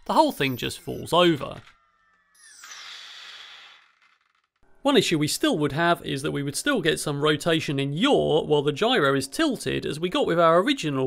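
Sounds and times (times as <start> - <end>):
flywheel whirring down: 0.4 - 4.6.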